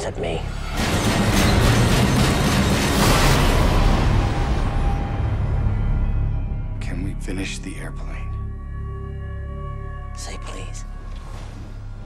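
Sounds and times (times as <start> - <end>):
trailer music: 0.0 - 12.0.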